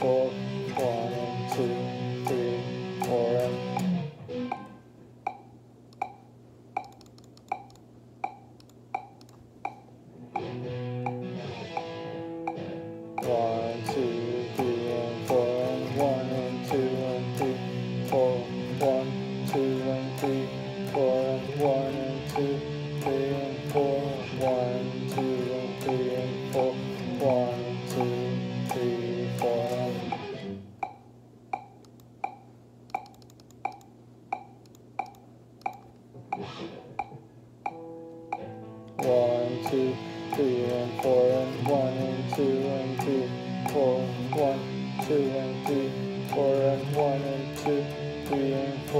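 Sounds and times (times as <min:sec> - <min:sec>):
steady tick: 0:00.0 - 0:03.9, 0:04.5 - 0:48.9
electric guitar picked notes: 0:00.0 - 0:04.8, 0:10.2 - 0:30.7, 0:36.4 - 0:48.9.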